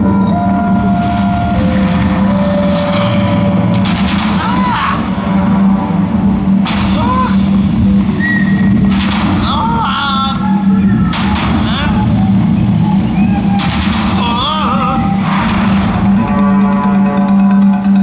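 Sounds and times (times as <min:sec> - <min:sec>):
loud noise bursts: 0:00.0 - 0:18.0
steady low drone: 0:00.0 - 0:18.0.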